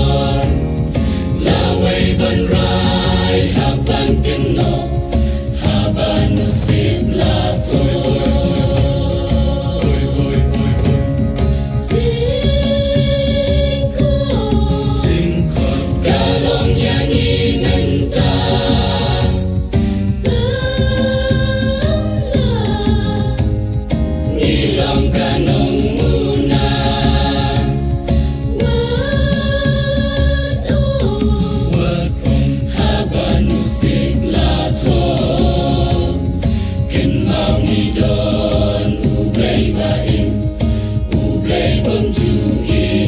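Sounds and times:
choir singing sustained notes: 0.0s - 23.5s, 24.2s - 43.0s
accompaniment with steady beat: 0.0s - 43.0s.

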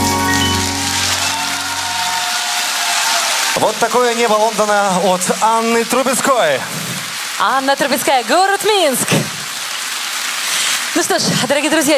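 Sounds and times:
audience applauding: 0.0s - 11.9s.

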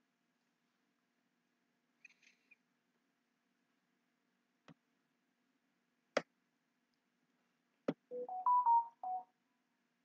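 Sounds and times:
electronic notification jingle: 8.1s - 9.2s.

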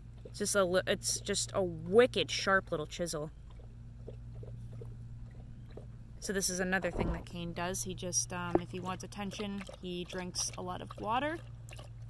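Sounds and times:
steady low hum: 0.0s - 12.0s
dog lapping water from metal bowl: 3.3s - 5.9s, 7.6s - 12.0s.

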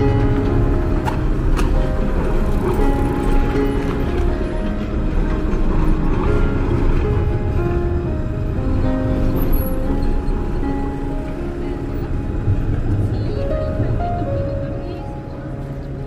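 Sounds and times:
rumble of street traffic: 0.0s - 16.0s
slow piano music: 0.0s - 16.0s.

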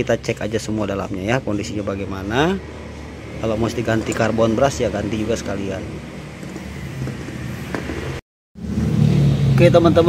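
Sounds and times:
vehicle humming: 0.0s - 10.0s.

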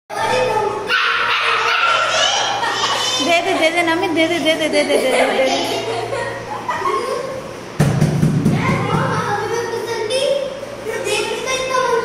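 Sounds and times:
children's voices: 0.1s - 7.5s, 8.6s - 12.0s
puppy barking: 0.9s - 2.4s.

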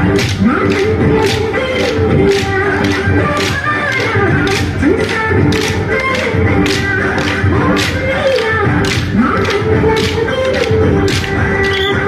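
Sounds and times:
dance sticks clacking: 0.0s - 12.0s
loud dance music: 0.0s - 12.0s.

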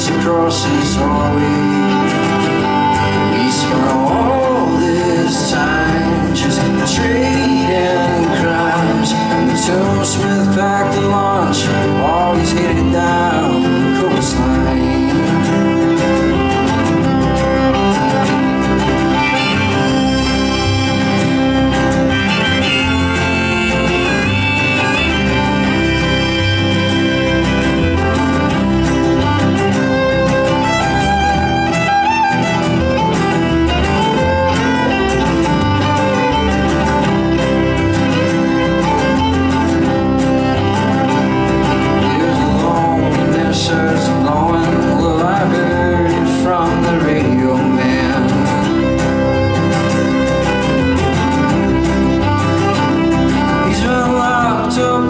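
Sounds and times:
fiddle melody with sliding notes: 0.0s - 55.0s
strummed acoustic guitar: 0.0s - 55.0s.

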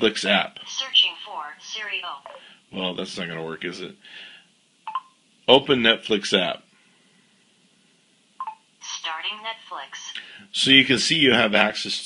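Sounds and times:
synthesized voice speaking: 0.0s - 3.5s, 8.8s - 10.2s.

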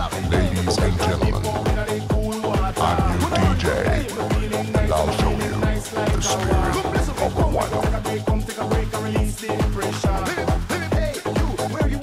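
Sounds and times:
electronic kick drum: 0.0s - 12.0s.

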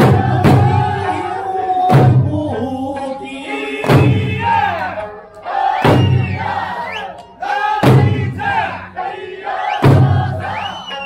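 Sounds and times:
drums struck together: 0.0s - 1.1s, 1.9s - 2.4s, 3.8s - 4.6s, 5.8s - 6.4s, 7.8s - 8.6s, 9.8s - 10.6s
music: 0.0s - 11.0s.

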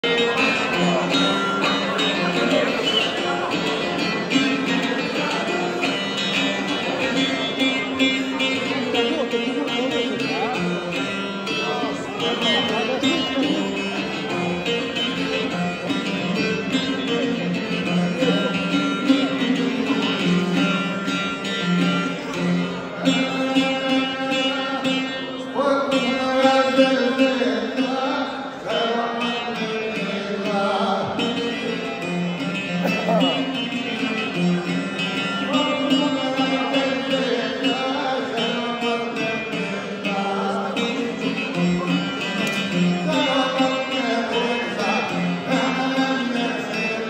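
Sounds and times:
audience talking: 0.0s - 47.0s
lute playing folk melody: 0.0s - 47.0s.

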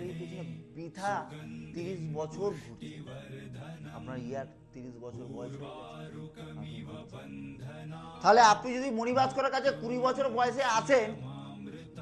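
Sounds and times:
chanted mantra voices: 0.0s - 12.0s.

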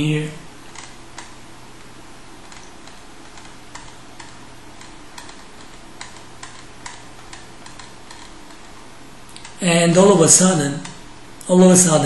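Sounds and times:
steady background hiss: 0.0s - 12.0s
computer mouse clicks: 0.7s - 9.6s.

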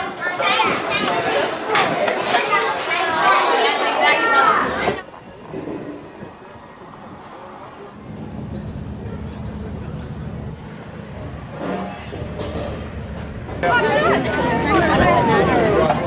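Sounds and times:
low motor hum: 6.0s - 13.6s.

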